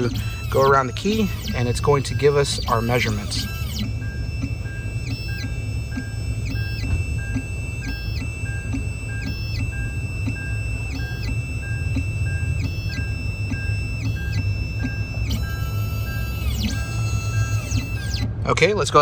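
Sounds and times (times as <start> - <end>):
key-cutting machine motors whining: 0.0 - 19.0
steady low hum: 0.0 - 19.0.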